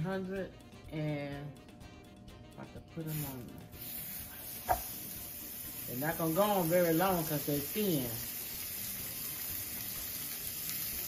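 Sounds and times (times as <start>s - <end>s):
steaks sizzling on a griddle: 3.1s - 11.0s.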